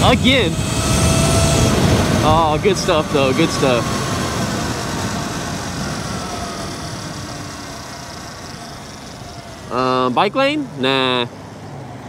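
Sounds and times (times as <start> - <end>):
wind rush: 0.0 - 10.2
electric motor whine: 0.0 - 11.8.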